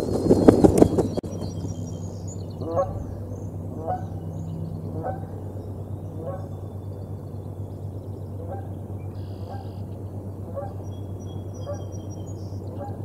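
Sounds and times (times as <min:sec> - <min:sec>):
steady low hum: 0:00.0 - 0:13.0
geese honking: 0:02.6 - 0:06.6, 0:08.3 - 0:09.9, 0:10.5 - 0:10.8.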